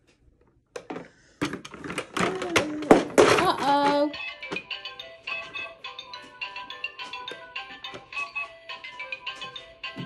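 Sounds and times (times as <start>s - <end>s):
electronic toy tune: 4.2s - 10.0s.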